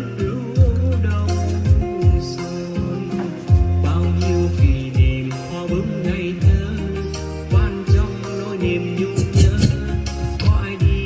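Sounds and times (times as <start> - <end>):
person singing: 0.0 - 11.0.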